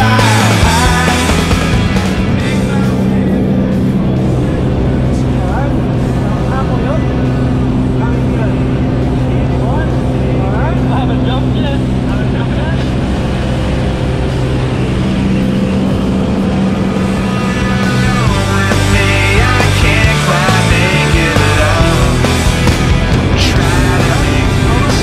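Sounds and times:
propeller plane droning: 0.0 - 25.0
voices talking: 0.0 - 25.0.

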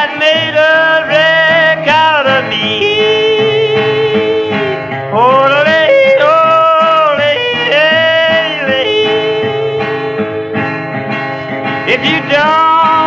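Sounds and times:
man yodeling: 0.0 - 9.9, 11.9 - 13.0
strummed acoustic guitar: 0.0 - 13.0.

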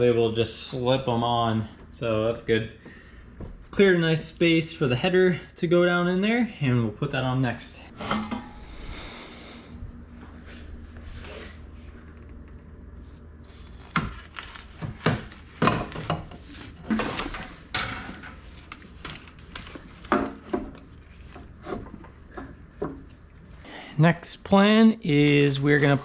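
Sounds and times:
low hum: 7.7 - 15.1.

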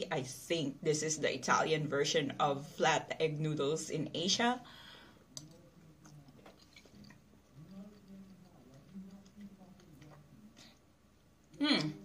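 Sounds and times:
person chewing food: 5.3 - 11.3
person humming mm: 11.5 - 12.0.

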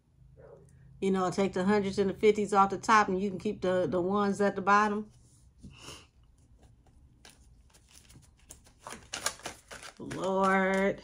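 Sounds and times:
cards being shuffled by hand: 6.4 - 11.0.

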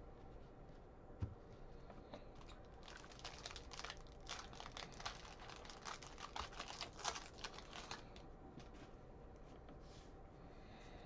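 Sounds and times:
foil wrapper tearing and crinkling: 2.4 - 8.2.

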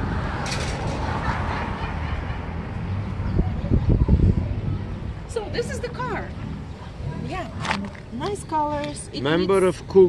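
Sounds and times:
street background rumble: 0.0 - 10.0.

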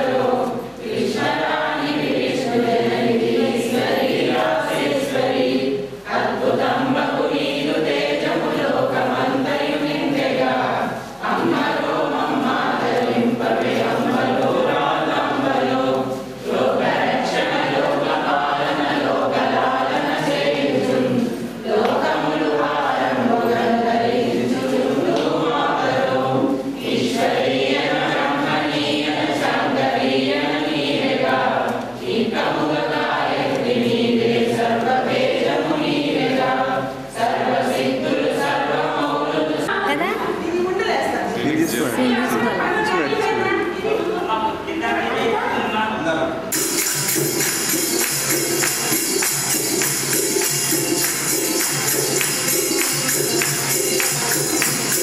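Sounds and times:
group of voices singing: 0.0 - 40.1, 46.5 - 55.0.

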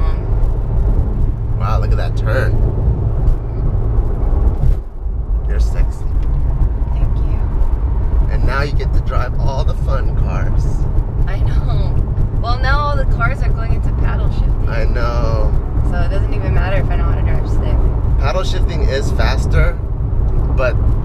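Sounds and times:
car engine drone: 0.0 - 21.0
road noise inside car: 0.0 - 21.0.

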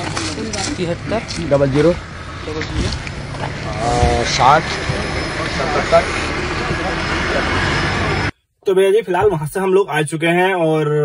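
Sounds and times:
outdoor background noise: 0.0 - 11.0
men talking: 1.0 - 11.0.

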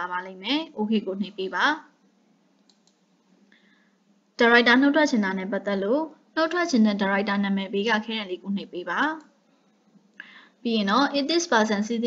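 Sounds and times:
computer mouse clicks: 2.5 - 3.1, 9.1 - 9.4.

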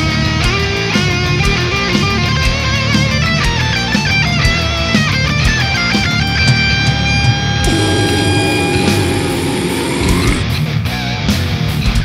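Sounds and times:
distorted electric guitars droning: 7.1 - 10.5
death metal music: 7.6 - 10.5
drums and bass: 11.3 - 12.0.

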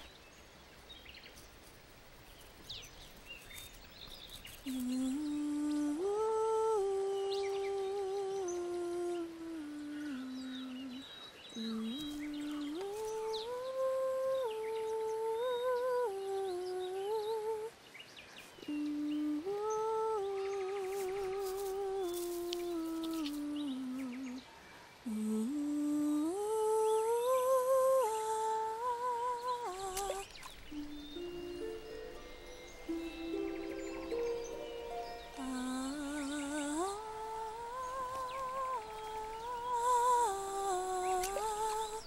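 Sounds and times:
slow wordless tune with trills: 25.1 - 42.0
soft background music: 30.7 - 39.4.

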